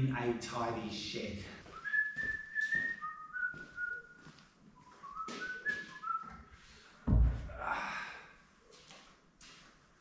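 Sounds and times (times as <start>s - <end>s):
man whistling a tune: 1.7s - 6.5s.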